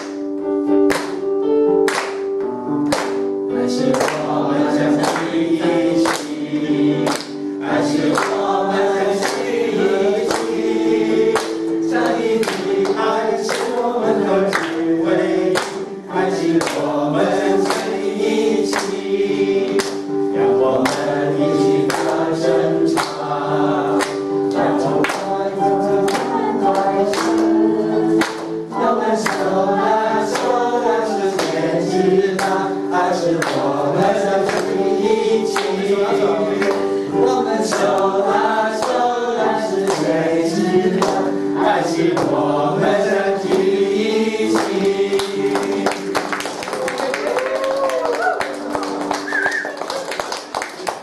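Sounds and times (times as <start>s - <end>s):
backing music with steady beat: 0.0s - 46.3s
group singing in unison: 3.6s - 46.8s.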